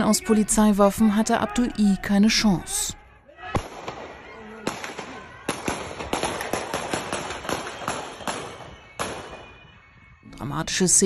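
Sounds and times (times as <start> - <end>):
pistol gunshots echoing: 3.5 - 9.6.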